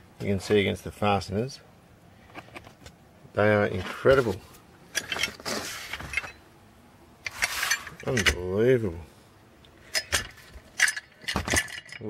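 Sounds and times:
metal clinks of tools: 9.9 - 12.0.

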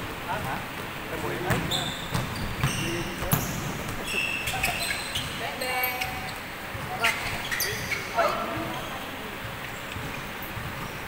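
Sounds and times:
players' voices: 0.2 - 10.2
sneakers squeaking: 0.3 - 11.0
basketball bouncing on hardwood: 0.4 - 8.8, 9.4 - 11.0.

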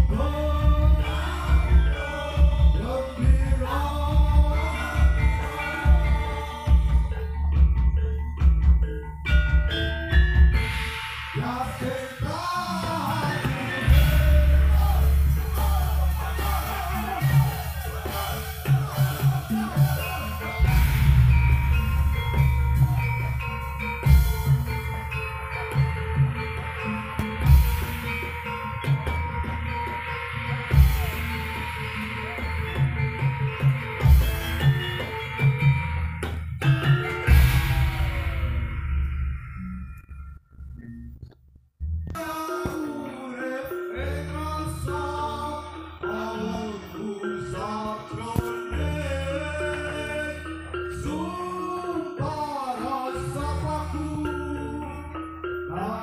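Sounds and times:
heavy drum beats: 0.0 - 39.6
ringing mallet-struck tones: 0.0 - 56.0
bright cymbal crash: 10.6 - 25.2.

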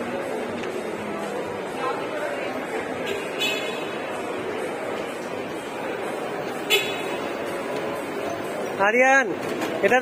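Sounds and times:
shopping mall hubbub: 0.0 - 10.0.

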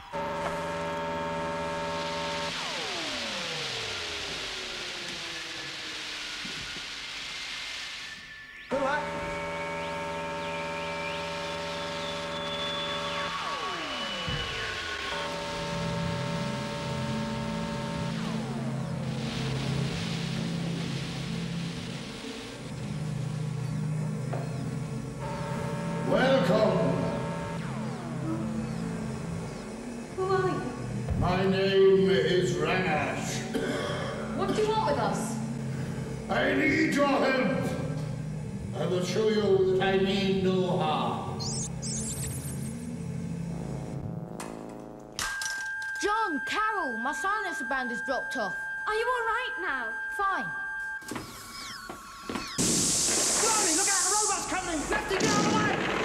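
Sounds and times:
downward-sweeping synth tones: 0.0 - 33.6, 46.2 - 56.0
low synth drones: 0.0 - 45.2, 46.6 - 56.0
hissing rush: 2.5 - 8.5, 11.6 - 23.5, 52.6 - 56.0
synthesizer chords: 8.7 - 36.3.

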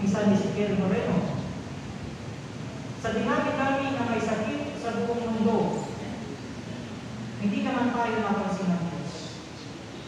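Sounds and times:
room background hiss: 0.0 - 10.0.

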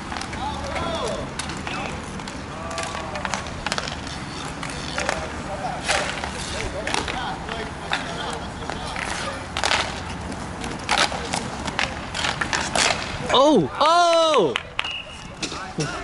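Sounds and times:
puck hitting boards: 0.0 - 13.4
hockey sticks clacking on puck: 0.0 - 16.0
skate wheels rolling: 0.0 - 16.0
players shouting: 0.3 - 3.5, 13.2 - 14.6.

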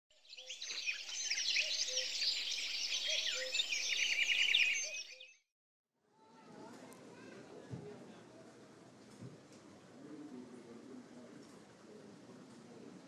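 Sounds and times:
birds chirping and trilling: 0.2 - 5.4.

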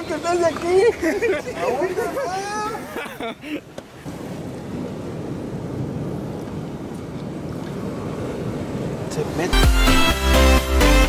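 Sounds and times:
wind buffeting microphone: 0.0 - 9.6
surf washing over rocks: 0.0 - 9.7.

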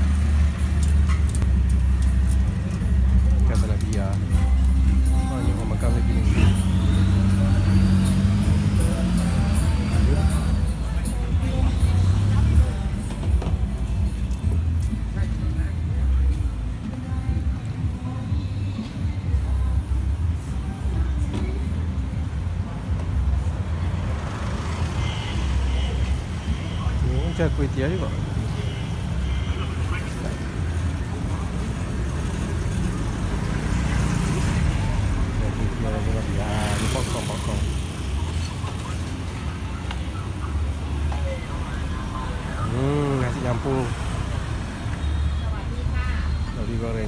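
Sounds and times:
faint music: 0.0 - 47.0
low traffic rumble: 0.0 - 47.0
scattered voices: 33.6 - 47.0.

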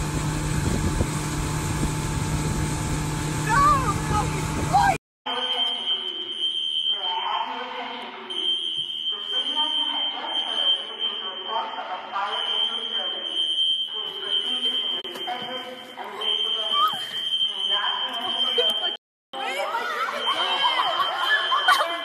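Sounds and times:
people's voices: 9.1 - 22.0.

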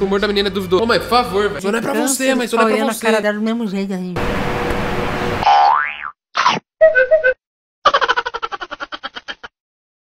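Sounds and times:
wobbling boing: 5.5 - 6.2.

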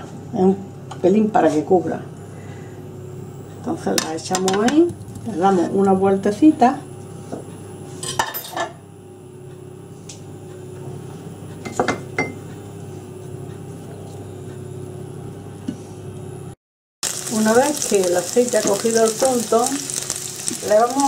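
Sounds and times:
potatoes sizzling in oil: 17.0 - 21.0.

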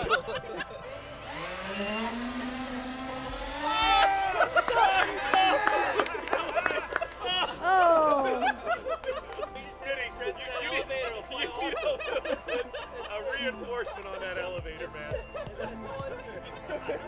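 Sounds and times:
electric motors buzzing: 0.0 - 17.0
people shouting and whooping: 3.4 - 9.5.

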